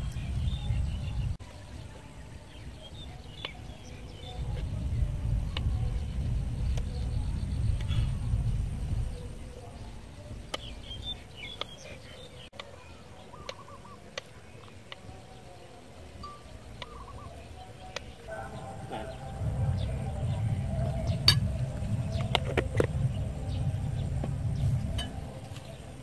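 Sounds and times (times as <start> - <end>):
wind rumble on microphone: 0.0 - 12.5, 16.1 - 26.0
faint birds calling: 0.0 - 26.0.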